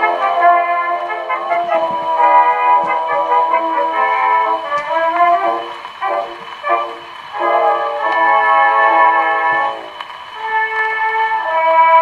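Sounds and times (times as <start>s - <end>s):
brass band record on phonograph: 0.0s - 12.0s.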